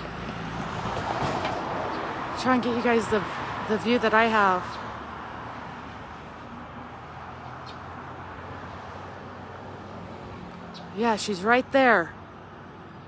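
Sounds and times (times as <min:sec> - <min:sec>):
low hum of traffic: 0:00.0 - 0:13.0.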